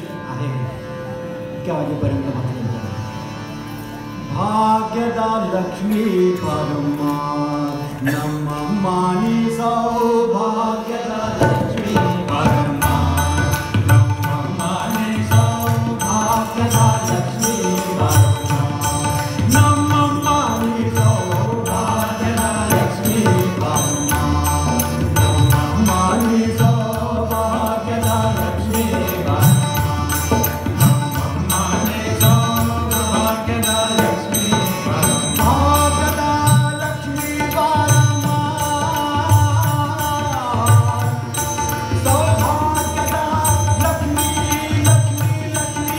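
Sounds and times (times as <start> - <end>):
harmonium: 0.0 - 45.9
tanpura drone: 0.0 - 45.9
man singing devotional song: 4.3 - 45.9
tabla strokes: 11.2 - 45.9.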